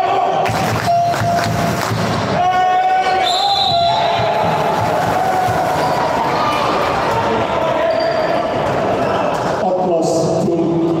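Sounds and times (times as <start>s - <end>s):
voices echoing in hall: 2.2s - 11.0s.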